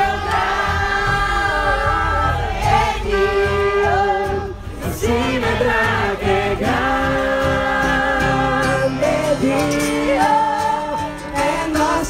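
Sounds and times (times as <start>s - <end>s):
crowd singing worship song: 0.0s - 12.0s.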